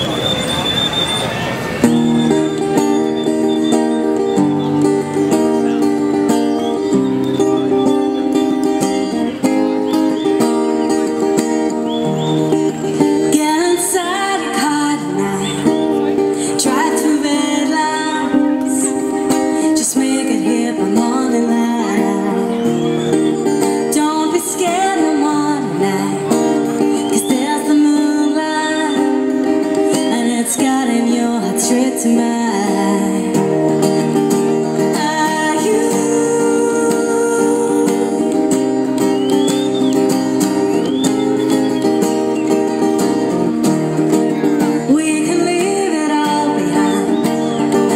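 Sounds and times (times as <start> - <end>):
acoustic guitar chords: 1.6 - 47.9.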